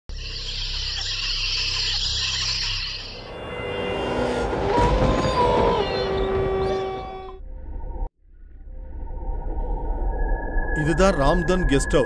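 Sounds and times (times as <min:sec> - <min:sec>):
low rumble: 0:04.4 - 0:11.5.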